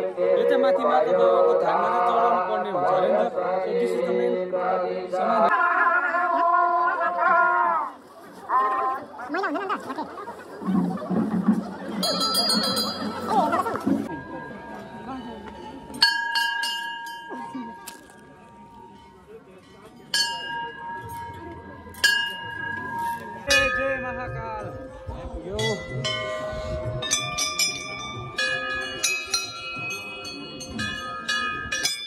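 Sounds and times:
temple bell ringing: 12.0 - 24.9, 25.6 - 32.0.

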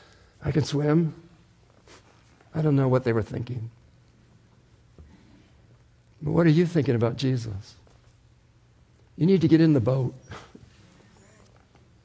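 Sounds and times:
man speaking: 2.5 - 3.8, 6.2 - 7.8, 9.2 - 10.5.

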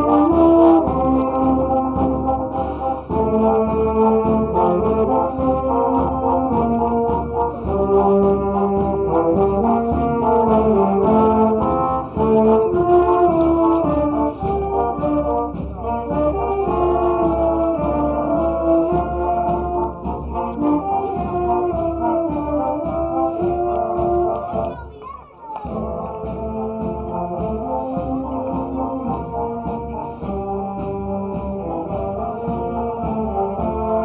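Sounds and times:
wind band playing: 0.0 - 25.0, 25.6 - 34.0.

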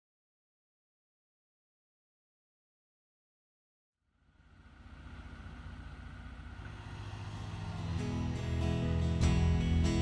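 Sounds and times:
forklift engine running: 4.1 - 10.0.

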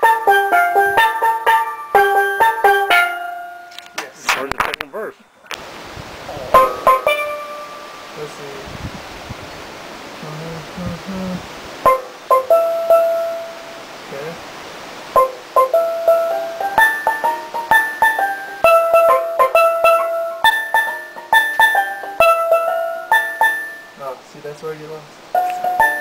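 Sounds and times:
steel pan melody: 0.0 - 4.2, 6.5 - 8.6, 11.8 - 14.3, 15.1 - 24.2, 24.8 - 26.0.

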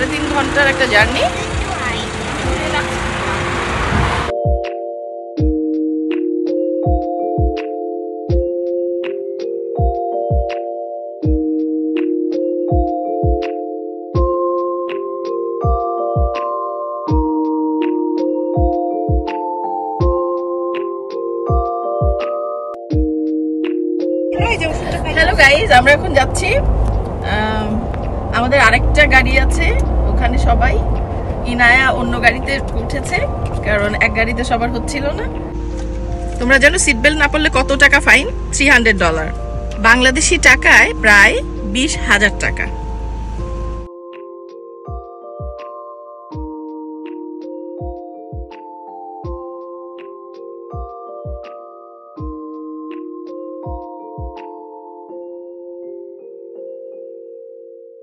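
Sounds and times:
car driving interior rumble: 0.0 - 4.3, 24.4 - 43.9
street noise hiss: 0.0 - 4.3
person talking: 24.4 - 26.6.

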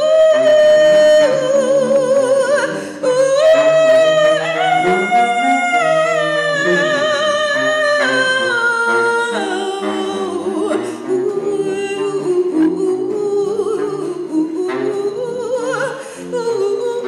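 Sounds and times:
woman singing without words: 0.0 - 17.0.

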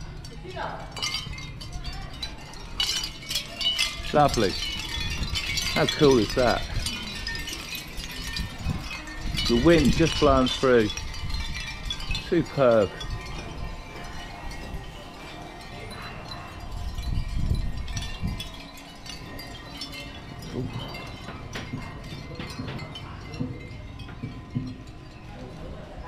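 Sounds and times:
shell wind chimes clinking: 0.0 - 26.0.

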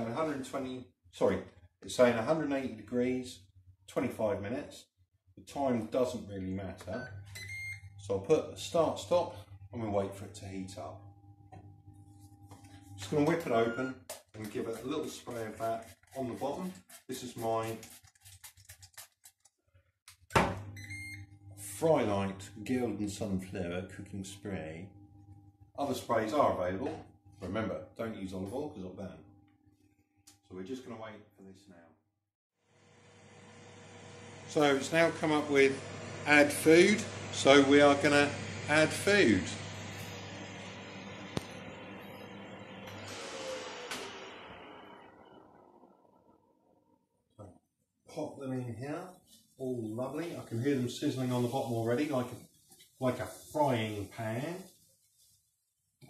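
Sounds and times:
air fryer fan humming: 32.8 - 46.0.

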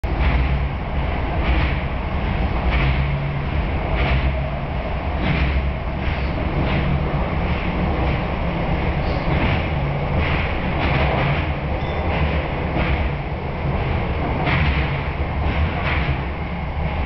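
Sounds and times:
subway train rumbling through tunnel: 0.0 - 17.0.

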